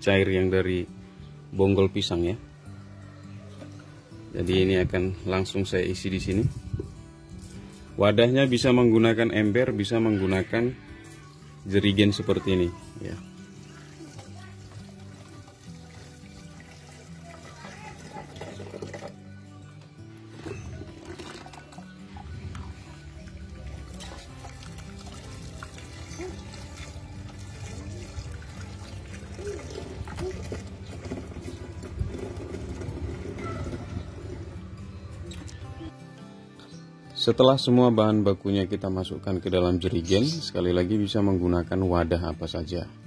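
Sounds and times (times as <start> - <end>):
background music with held notes: 0.0 - 43.0
slurry poured into plastic jerrycan: 20.4 - 21.8, 23.8 - 34.3.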